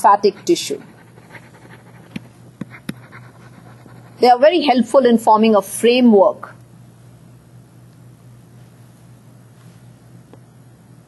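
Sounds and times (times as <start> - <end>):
faint low hum: 0.0 - 11.0
stylus tapping on tablet: 2.1 - 3.0.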